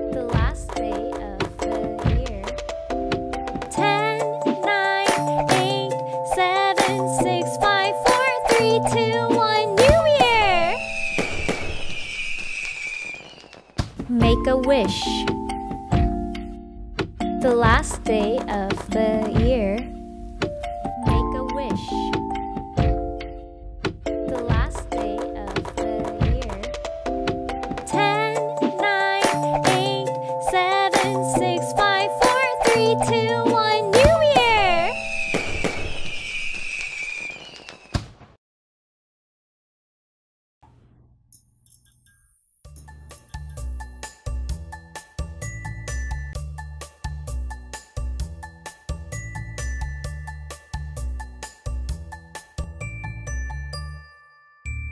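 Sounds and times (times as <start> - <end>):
firework whistle falling in pitch: 10.0 - 13.8, 34.4 - 38.2
firework bangs: 10.0 - 14.0, 34.1 - 38.4
firework crackle: 10.7 - 14.0, 34.9 - 38.3.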